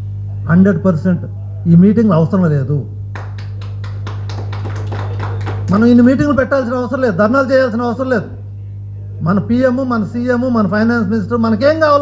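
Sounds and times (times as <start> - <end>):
low electrical hum: 0.0 - 12.0
audience clapping: 3.1 - 6.1.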